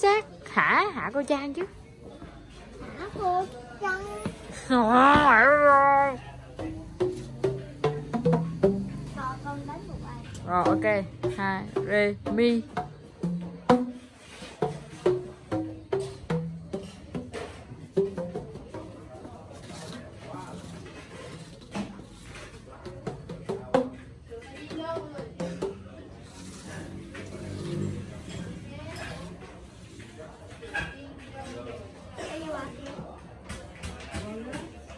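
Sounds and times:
voices: 0:00.0 - 0:13.2
bamboo tubes knocking notes: 0:04.9 - 0:09.2, 0:09.9 - 0:19.3.

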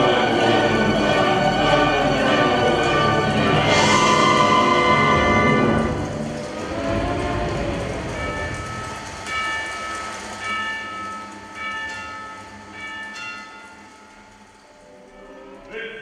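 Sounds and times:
audience applause: 0:03.2 - 0:09.8.

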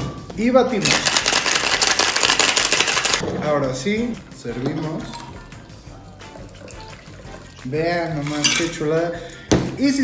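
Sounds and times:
music: 0:00.0 - 0:10.0
liquid pouring and splashing into glass: 0:04.6 - 0:08.8.

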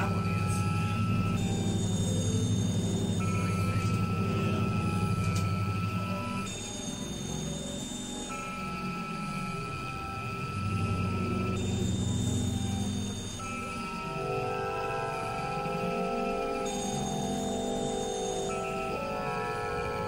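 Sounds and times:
high held synth tones: 0:00.0 - 0:20.0
low synthesizer drone: 0:00.0 - 0:20.0.

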